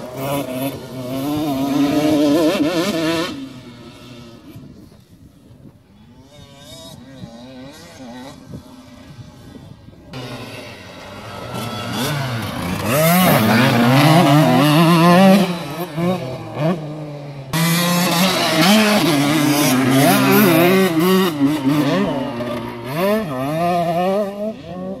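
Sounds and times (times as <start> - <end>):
motocross bike engine revving: 0.0 - 4.8, 5.9 - 25.0.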